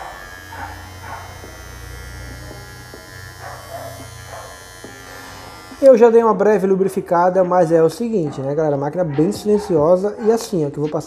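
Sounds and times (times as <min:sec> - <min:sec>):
dog barking faintly: 0:00.0 - 0:01.6, 0:03.4 - 0:04.6, 0:07.4 - 0:11.0
hair clipper humming: 0:00.0 - 0:07.8.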